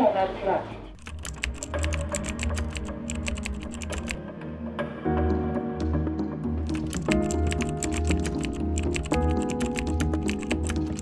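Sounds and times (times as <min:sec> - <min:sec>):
keyboard typing clicks: 0:01.0 - 0:04.2, 0:06.7 - 0:11.0.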